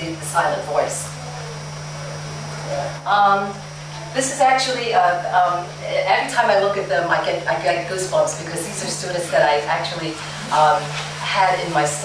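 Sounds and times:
low even hum: 0.0 - 12.0
steady hiss: 0.0 - 12.0.

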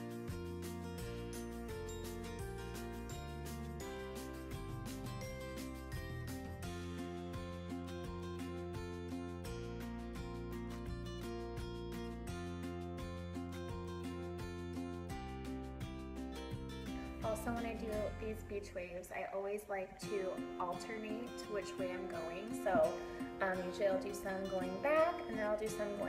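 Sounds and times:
background music with steady beat: 0.0 - 19.0, 19.9 - 26.0.

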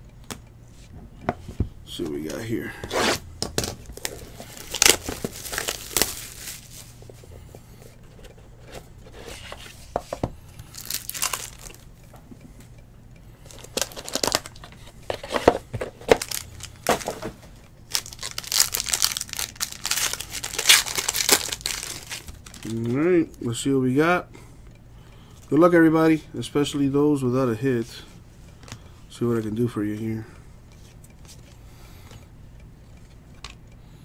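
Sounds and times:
plastic wrap tearing and crinkling: 3.6 - 7.0, 10.7 - 11.8, 13.5 - 14.6, 16.0 - 17.2, 17.9 - 22.9
box being handled: 13.6 - 22.7.

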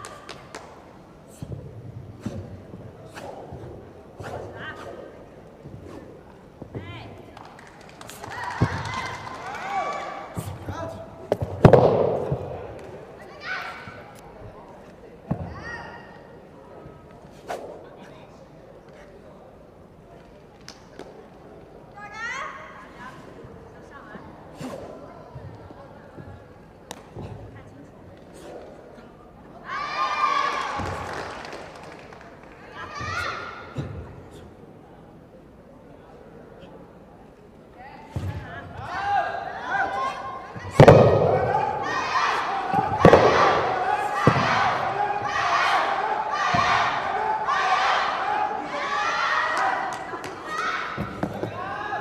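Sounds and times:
wooden staff swishing: 1.3 - 6.8, 17.2 - 17.9, 24.5 - 25.0, 28.3 - 29.1
high-pitched shouting echoing: 32.8 - 33.8, 38.8 - 52.0.

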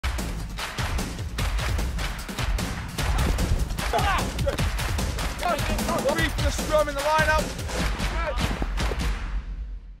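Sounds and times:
players shouting: 3.8 - 4.6.

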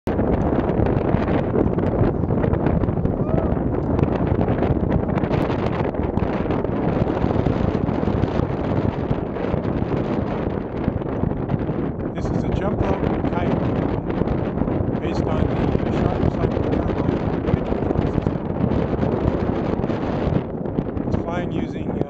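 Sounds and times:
wind blowing over microphone: 0.0 - 22.0.

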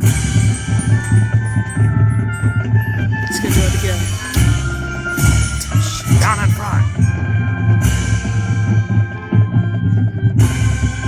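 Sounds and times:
bass drum and percussion: 0.0 - 11.0
marching band brass chords: 0.0 - 11.0.

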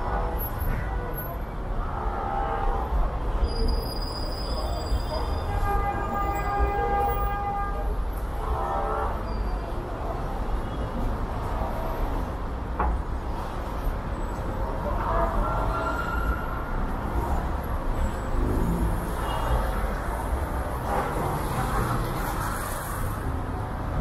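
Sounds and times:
traffic rumble: 0.0 - 24.0.

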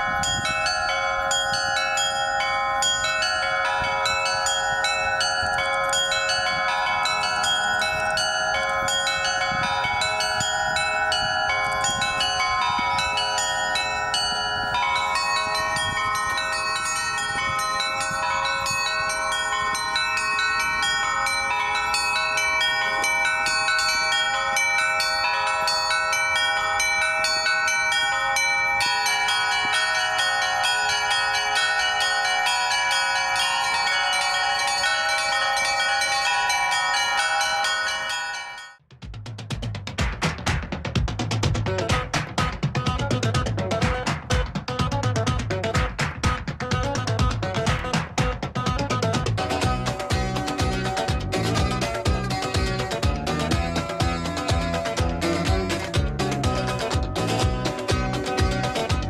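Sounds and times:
bells ringing in a peal: 0.0 - 38.9, 47.5 - 59.0.

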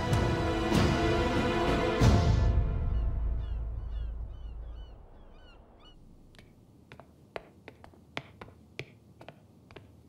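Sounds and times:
orchestral music: 0.0 - 3.8
gulls calling: 2.8 - 6.6
footsteps on stone: 6.3 - 10.0.

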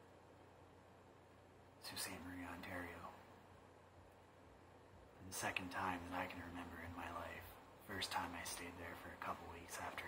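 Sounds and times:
faint low hum: 0.0 - 10.0
man speaking: 1.8 - 3.3, 5.2 - 10.0.

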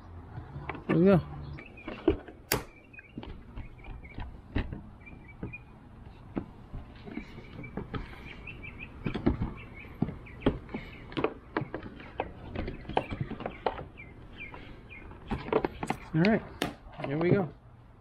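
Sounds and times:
small birds chirping: 0.0 - 17.5.

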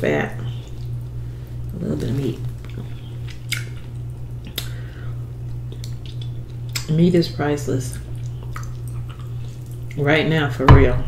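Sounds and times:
steady low hum: 0.0 - 11.0
wet eating sounds: 0.4 - 10.2
sharp wet smacks: 2.6 - 4.8, 7.9 - 9.8.

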